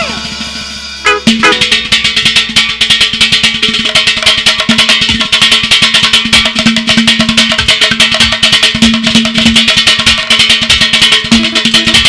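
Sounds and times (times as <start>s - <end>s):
keyboard notes: 0.0s - 2.0s
fast drum and percussion beat: 1.1s - 12.0s.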